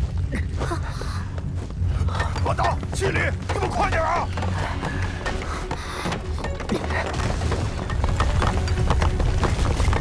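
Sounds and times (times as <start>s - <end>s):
clattering debris: 6.6s - 10.0s.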